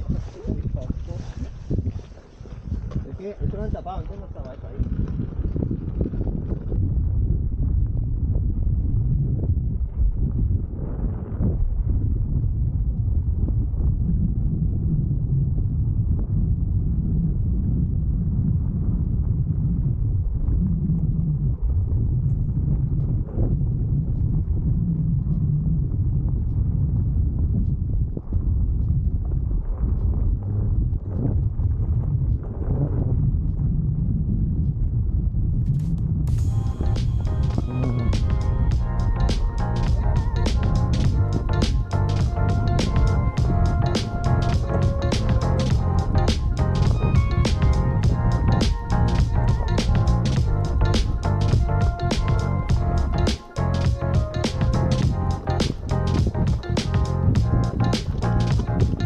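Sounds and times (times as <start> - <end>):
tyre rumbling over stony track: 0.0 - 8.4
wind buffeting microphone: 0.0 - 59.0.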